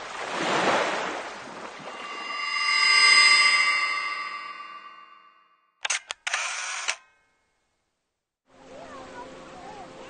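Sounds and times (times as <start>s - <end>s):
camera shutter clicks: 5.8s - 7.0s.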